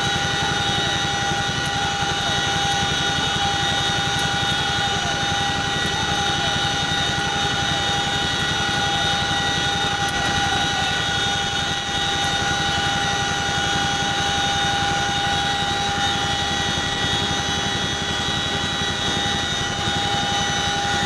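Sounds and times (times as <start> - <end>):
helicopter rotors beating: 0.0 - 21.0
helicopter whine: 0.0 - 21.0.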